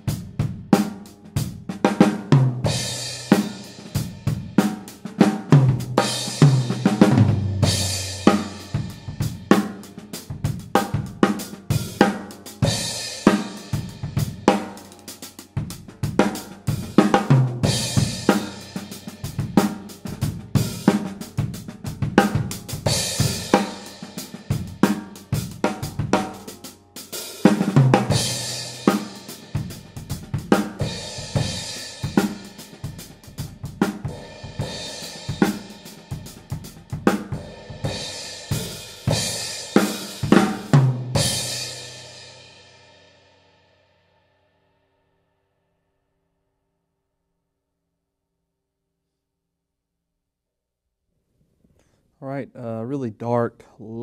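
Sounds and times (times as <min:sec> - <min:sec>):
drum kit groove: 0:00.0 - 0:42.4.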